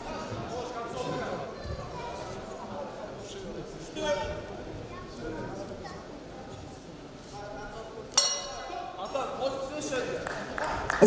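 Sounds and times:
boxing ring bell: 0:08.2 - 0:08.8.

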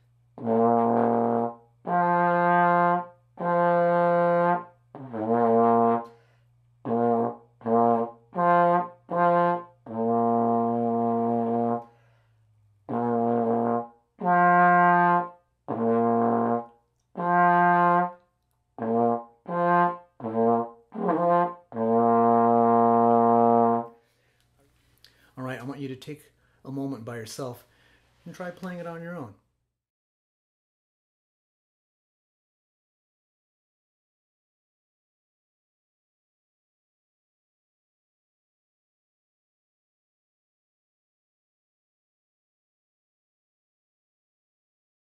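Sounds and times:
trombone playing: 0:00.4 - 0:06.2, 0:06.8 - 0:12.0, 0:12.8 - 0:18.2, 0:18.8 - 0:24.0.

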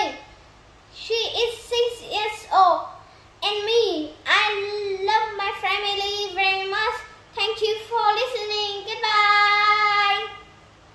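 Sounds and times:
girl singing unaccompanied: 0:01.0 - 0:10.6.

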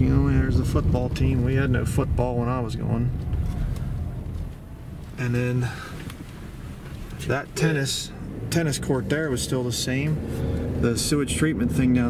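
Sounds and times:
engine and tyre rumble in car: 0:00.0 - 0:12.0.

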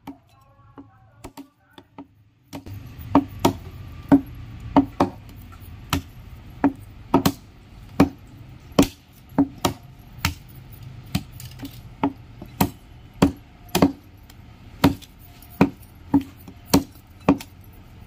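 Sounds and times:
cleaver chopping meat on wood: 0:05.9 - 0:07.4, 0:08.0 - 0:08.2.

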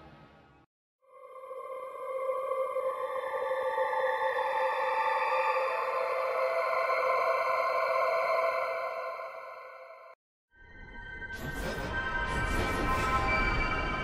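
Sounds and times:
synthesizer choir drone chord: 0:01.0 - 0:10.2.

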